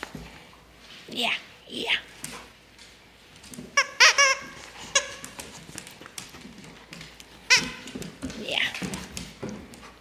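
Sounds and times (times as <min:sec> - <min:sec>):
dog toy squeaking: 0:03.8 - 0:05.4, 0:07.5 - 0:08.0.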